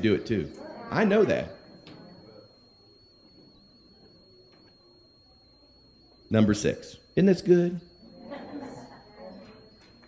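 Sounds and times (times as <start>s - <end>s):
thin high-pitched whine: 0.0s - 10.0s.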